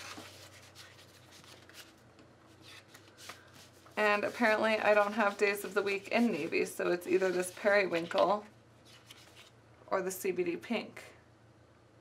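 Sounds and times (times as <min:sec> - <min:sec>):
faint paper rustling: 0:00.0 - 0:09.6.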